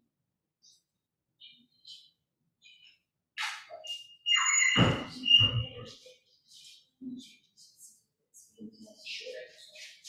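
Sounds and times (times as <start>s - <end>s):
squeak: 3.7s - 6.0s.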